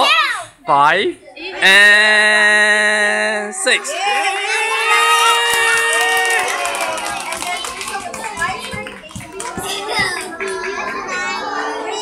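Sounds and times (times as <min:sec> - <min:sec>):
children chattering: 0:00.0 - 0:00.5, 0:03.6 - 0:12.0
children cheering: 0:03.8 - 0:12.0
hand clapping: 0:05.5 - 0:11.0.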